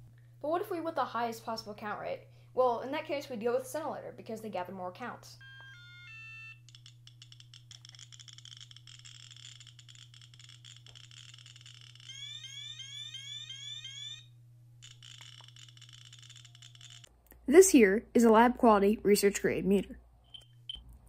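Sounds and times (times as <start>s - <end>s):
rising chirp alarm: 5.4s - 17.1s
radiation detector clicking rapidly: 6.6s - 14.2s, 14.8s - 17.1s.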